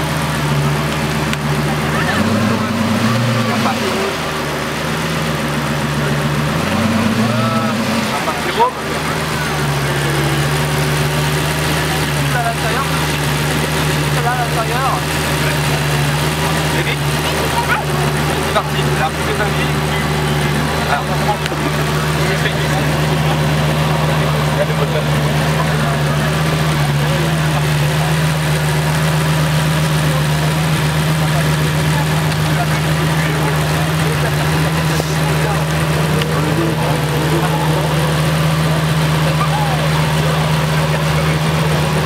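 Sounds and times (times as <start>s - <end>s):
car engine idling: 0.0s - 42.0s.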